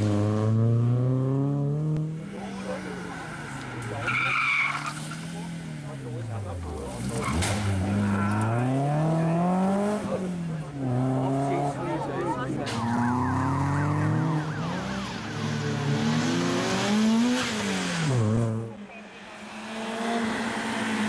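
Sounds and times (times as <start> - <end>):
rally car engine revving: 0.0 - 21.0.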